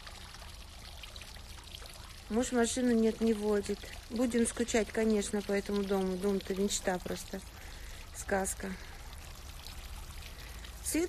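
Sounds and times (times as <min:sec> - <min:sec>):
fountain water splashing and trickling: 0:00.0 - 0:11.0.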